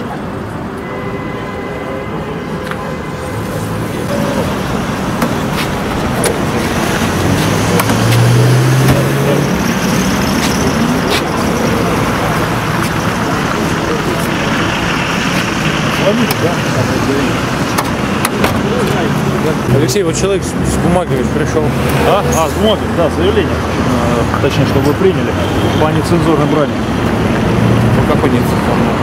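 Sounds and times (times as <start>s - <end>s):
road traffic with car engines: 0.0s - 29.0s.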